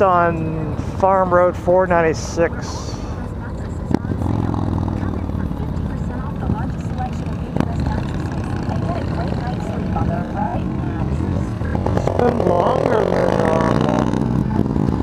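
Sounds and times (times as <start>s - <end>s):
motorcycle engine running: 0.0s - 15.0s
other motorcycles running: 0.0s - 15.0s
wind and road rush: 0.0s - 15.0s.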